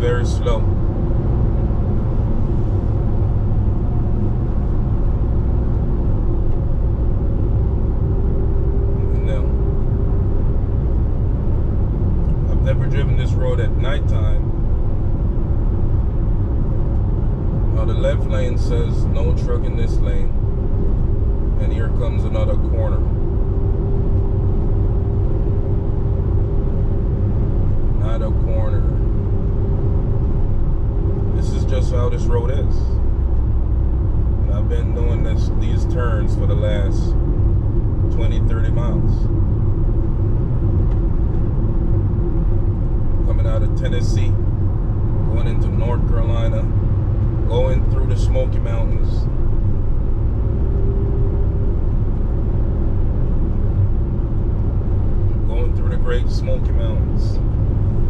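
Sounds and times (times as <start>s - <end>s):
car road and engine rumble: 0.0s - 58.0s
steady hum: 0.0s - 58.0s.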